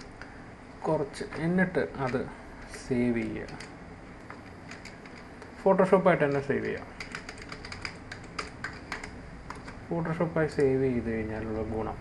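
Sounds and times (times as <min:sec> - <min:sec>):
typing on computer keyboard: 0:03.2 - 0:05.3, 0:06.2 - 0:09.8.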